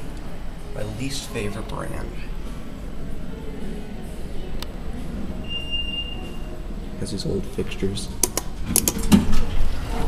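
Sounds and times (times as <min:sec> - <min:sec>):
high-pitched beep: 0:05.4 - 0:06.5
sharp click: 0:08.2 - 0:09.1.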